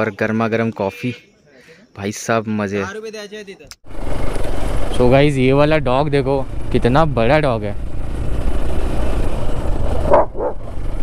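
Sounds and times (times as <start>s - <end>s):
wind: 0.0s - 11.0s
motorcycle engine rumble: 3.8s - 11.0s
dog barking: 10.0s - 10.6s.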